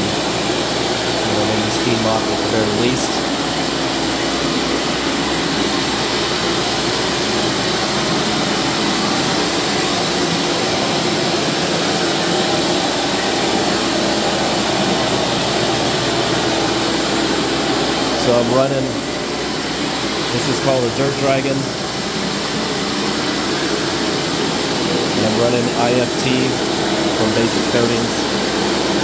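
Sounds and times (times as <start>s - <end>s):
floor scrubber motor running: 0.0s - 29.0s.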